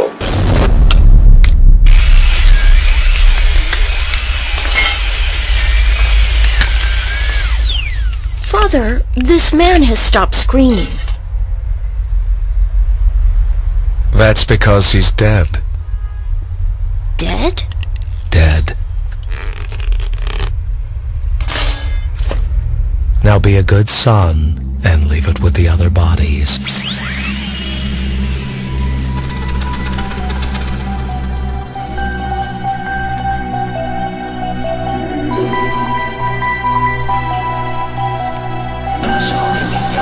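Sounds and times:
hissing burst: 0:00.0 - 0:08.6
low drone: 0:00.0 - 0:40.0
high wavering machine whine: 0:01.8 - 0:13.9, 0:24.5 - 0:40.0
loud low rumble: 0:08.8 - 0:19.1, 0:20.1 - 0:34.1.

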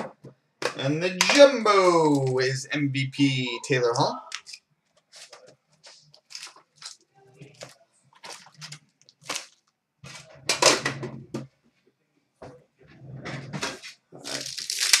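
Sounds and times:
card packs rustling: 0:04.3 - 0:10.2, 0:14.2 - 0:15.0.

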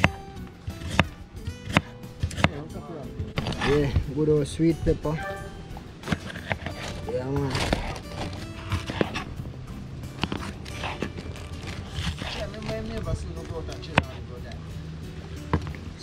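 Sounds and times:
knife chopping on wooden board: 0:00.0 - 0:02.6, 0:06.0 - 0:09.3
music with a voice: 0:01.3 - 0:06.0, 0:06.7 - 0:16.0.

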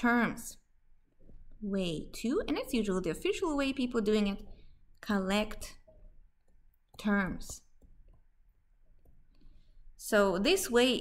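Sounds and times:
stylus tapping on tablet screen: 0:05.8 - 0:09.6.

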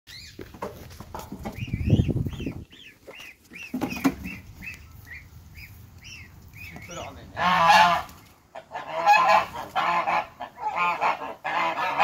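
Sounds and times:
goslings peeping: 0:01.2 - 0:12.0.

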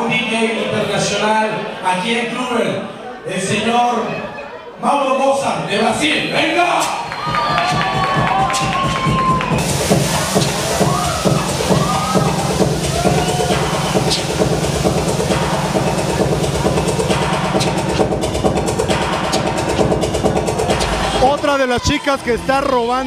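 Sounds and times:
electronic dance music: 0:07.4 - 0:23.0.

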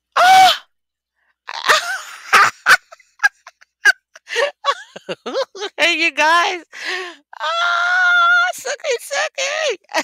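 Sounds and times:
woman laughing excitedly: 0:01.5 - 0:06.0.

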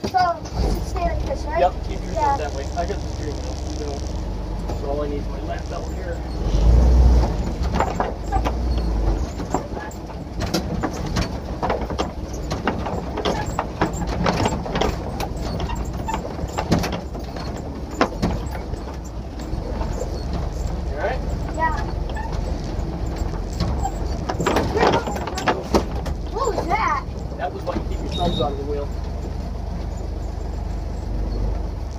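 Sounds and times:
low engine rumble: 0:00.0 - 0:31.9
vehicle body knocks and rattles: 0:00.0 - 0:31.9.

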